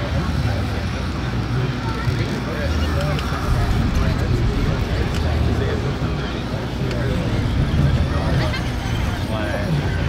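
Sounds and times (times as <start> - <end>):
people talking faintly: 0.0 - 10.0
low rumble: 3.4 - 10.0.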